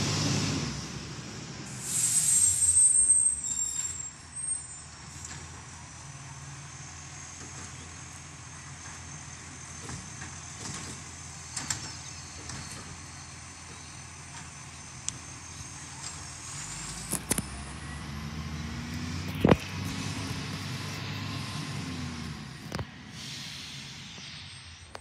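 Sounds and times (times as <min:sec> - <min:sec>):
air brakes hissing and squealing: 0:00.0 - 0:18.2, 0:19.4 - 0:25.0
truck diesel engine: 0:00.0 - 0:25.0.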